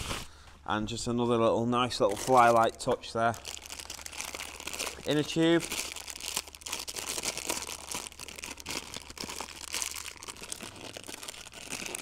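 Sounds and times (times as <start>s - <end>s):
plastic packaging crinkling: 1.9s - 12.0s.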